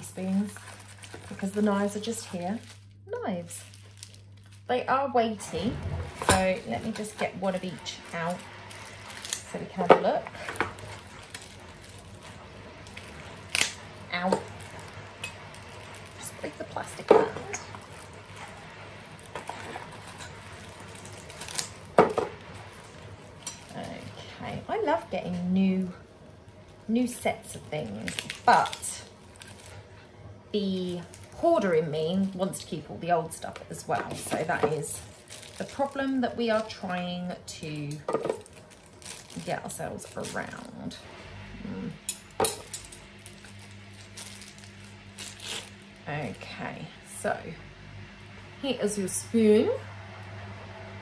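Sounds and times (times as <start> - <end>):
plastic wrapping rustling: 0.0 - 46.9
metal cutlery clinking: 42.1 - 43.6.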